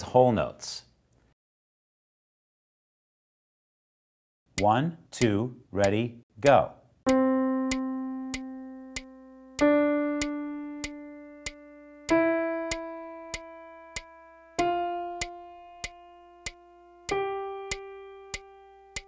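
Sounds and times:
metronome clicks: 4.5s - 6.0s, 7.1s - 19.0s
piano notes: 7.1s - 19.0s.

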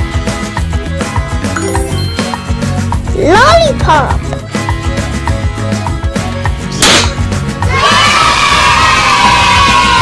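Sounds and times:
children's music with steady beat: 1.5s - 3.7s.

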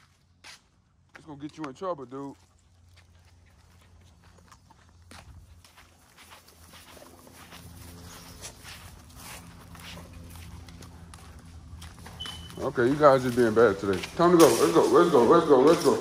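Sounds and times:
footsteps and scuffling on grass: 0.0s - 16.0s.

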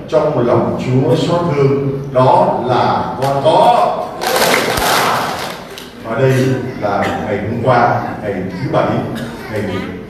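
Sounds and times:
congregation applauding: 4.0s - 6.0s.

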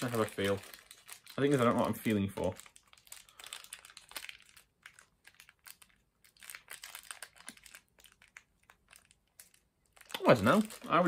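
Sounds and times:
bag crinkling in fingers: 0.0s - 11.0s.

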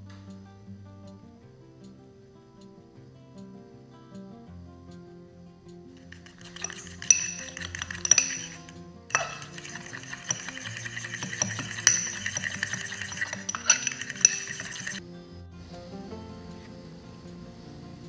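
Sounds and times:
fork beating egg in bowl: 6.0s - 15.0s.

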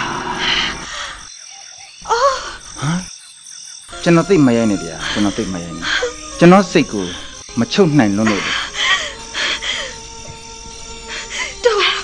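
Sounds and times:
frogs croaking: 0.0s - 12.0s
insects chirping: 0.0s - 12.0s.

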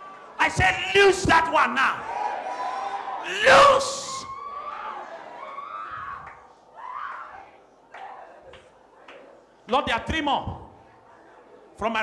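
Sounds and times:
voices calling out in prayer: 0.0s - 9.8s.

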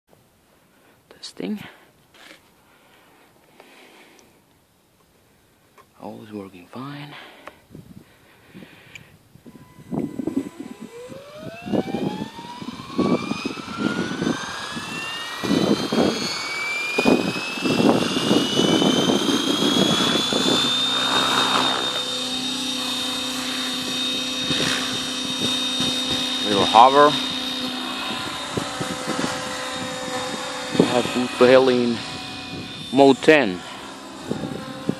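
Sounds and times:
faint electric motor whine: 5.2s - 34.9s
rotor blades hissing: 8.6s - 34.9s
faint wind rumble: 23.6s - 34.9s.

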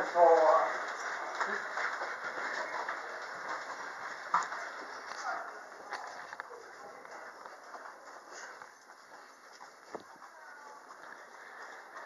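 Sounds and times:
faint footsteps: 0.0s - 12.0s
suitcase wheels rolling: 0.0s - 12.0s.

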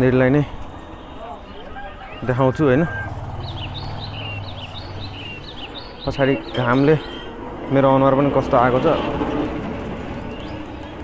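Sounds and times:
small birds chirping: 0.6s - 11.0s.

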